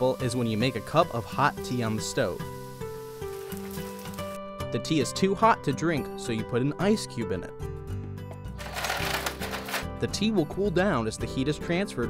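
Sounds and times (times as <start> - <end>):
background music: 0.0 - 12.0
ice cubes clattering in plastic bin: 8.6 - 9.9.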